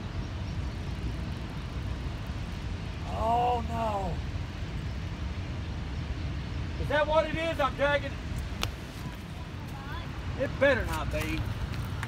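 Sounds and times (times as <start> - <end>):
outdoor background rumble: 0.0 - 12.0.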